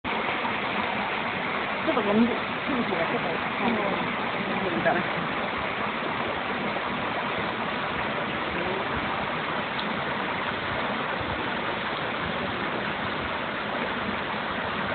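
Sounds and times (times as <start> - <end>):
waterfall rushing: 0.1 - 14.9.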